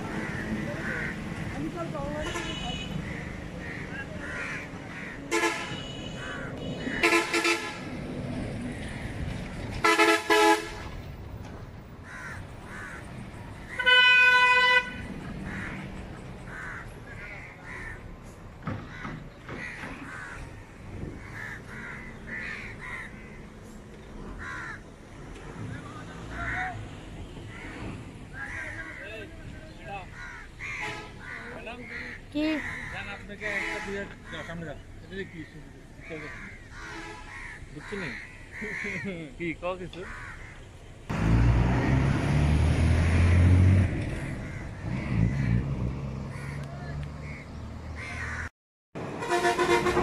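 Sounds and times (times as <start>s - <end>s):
crows cawing: 0.0s - 1.7s, 3.0s - 5.5s, 6.1s - 7.5s, 12.0s - 14.0s, 15.4s - 18.1s, 18.7s - 23.5s, 24.4s - 24.9s, 25.7s - 26.8s, 27.5s - 39.3s, 40.0s - 40.7s, 44.1s - 45.7s, 46.3s - 48.5s
vehicle horns honking: 2.1s - 3.2s, 5.3s - 7.9s, 9.8s - 11.0s, 13.7s - 15.2s, 30.7s - 31.2s, 33.4s - 34.3s, 36.8s - 37.4s, 49.0s - 50.0s.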